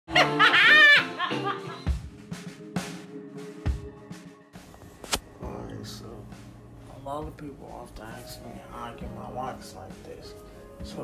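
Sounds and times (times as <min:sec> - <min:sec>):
woman laughing loudly: 0:00.1 - 0:02.0
music: 0:00.1 - 0:11.0.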